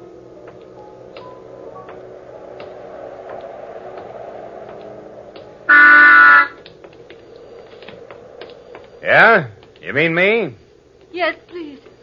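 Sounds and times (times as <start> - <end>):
car horn honking: 5.7 - 6.6.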